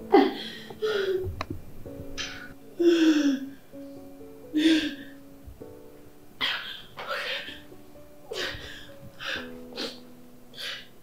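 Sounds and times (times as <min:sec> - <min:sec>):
woman sobbing: 0:00.1 - 0:01.3, 0:02.8 - 0:03.6, 0:04.5 - 0:05.2.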